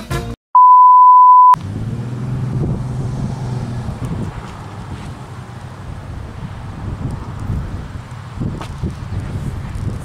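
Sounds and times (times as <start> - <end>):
brass swing music: 0.0 - 0.4
steady single-pitch beep: 0.6 - 1.6
wind on microphone: 2.3 - 10.0.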